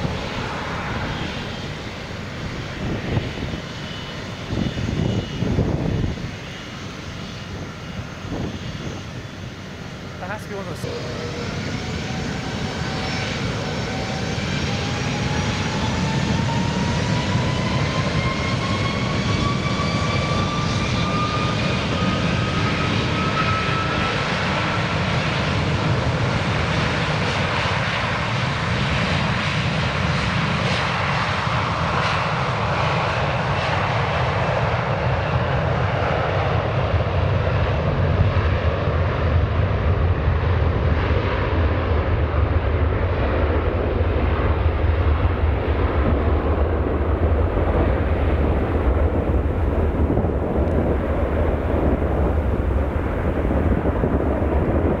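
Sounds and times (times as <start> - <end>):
jet engines spooling up: 0.0 - 28.5.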